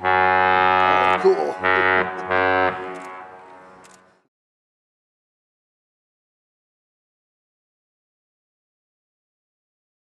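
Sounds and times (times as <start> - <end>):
ship's horn blasts: 0.0 - 4.2.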